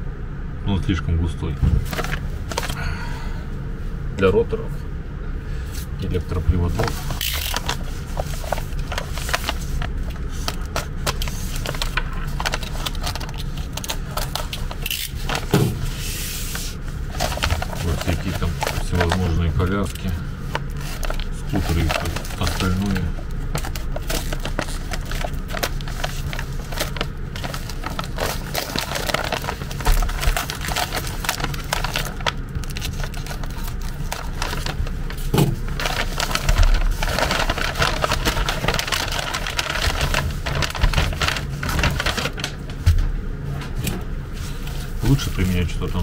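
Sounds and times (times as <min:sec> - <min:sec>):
paper and plastic film crinkling: 0:01.8 - 0:02.8, 0:06.0 - 0:42.9, 0:44.4 - 0:46.0.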